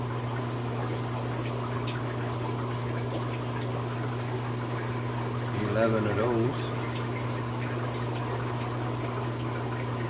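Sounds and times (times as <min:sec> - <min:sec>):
aquarium pump humming: 0:00.0 - 0:10.0
moving water: 0:00.0 - 0:10.0.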